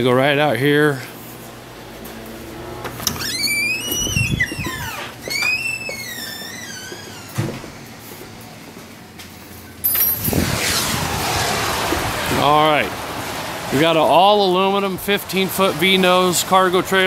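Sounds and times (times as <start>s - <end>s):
door hinges squealing: 3.0s - 7.5s.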